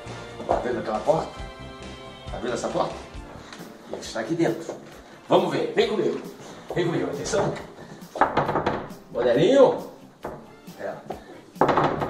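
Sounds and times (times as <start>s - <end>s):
fist knocking on wooden door: 8.2s - 9.0s, 11.6s - 12.0s.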